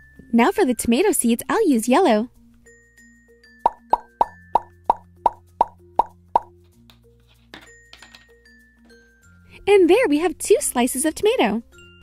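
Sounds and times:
light background music: 0.0 - 12.0
plop sound effects: 3.6 - 6.5.

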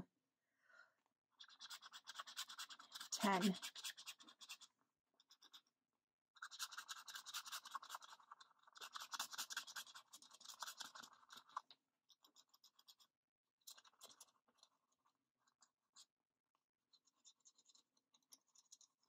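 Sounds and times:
pen scribbling on paper: 1.4 - 4.7, 6.4 - 11.4.

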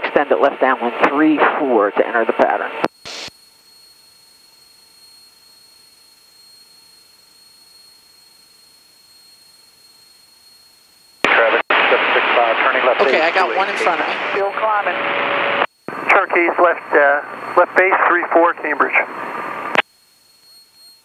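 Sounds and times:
loud radio transmission: 0.0 - 3.3, 11.2 - 19.8
high electrical whine: 0.0 - 21.0
faint radio hiss: 11.2 - 19.8
radio squelch burst: 11.2 - 19.8.

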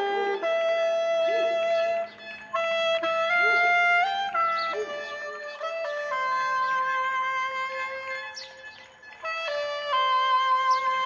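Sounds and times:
saxophone holding long note: 0.0 - 11.0.

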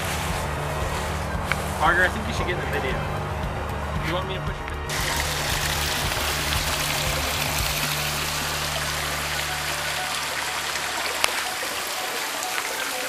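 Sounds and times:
low hum: 0.0 - 12.1
water trickling over rocks: 4.9 - 13.0.

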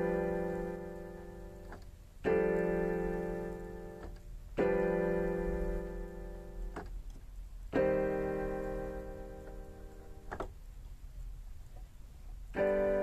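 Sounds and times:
piano chords: 0.0 - 13.0.

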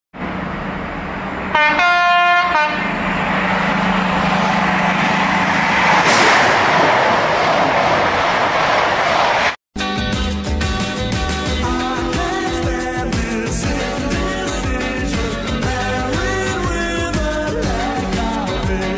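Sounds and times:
train rushing: 0.2 - 9.6
train horn: 1.5 - 3.0.

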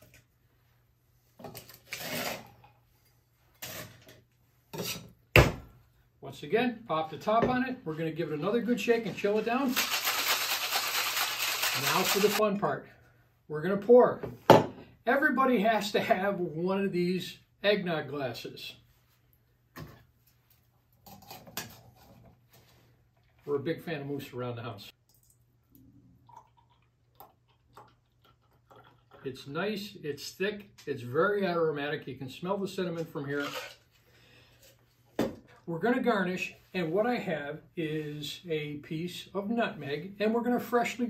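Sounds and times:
ice cubes clattering into metal tin: 9.6 - 12.4
metal shaker tins smacking together: 9.7 - 12.4.

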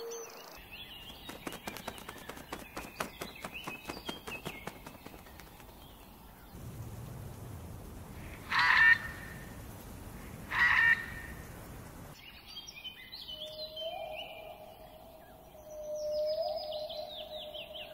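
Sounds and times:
small birds chirping: 0.0 - 17.9
harsh rattling bird calls: 0.1 - 6.7, 8.1 - 9.5, 10.2 - 11.4
low background rumble: 5.7 - 12.2.

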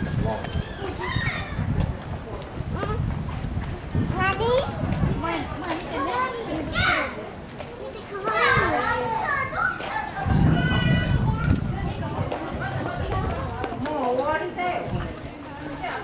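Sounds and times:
children chattering and calling: 0.0 - 16.0.

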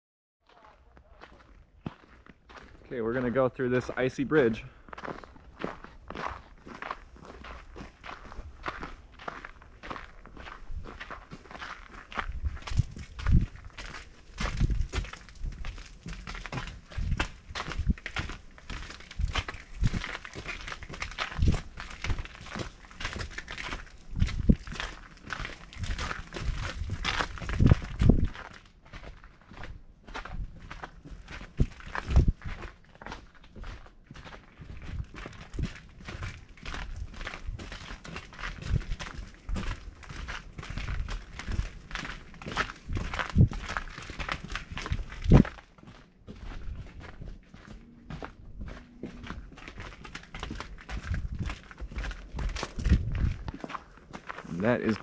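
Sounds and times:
footsteps on packed snow: 0.5 - 55.0.

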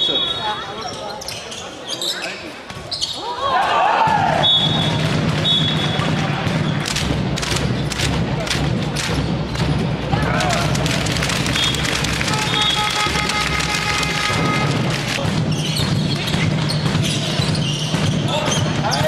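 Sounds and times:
players calling out: 0.0 - 19.0
ball bouncing on court floor: 4.1 - 10.0, 11.1 - 19.0
referee whistle blasts: 4.3 - 6.2, 11.5 - 14.8.

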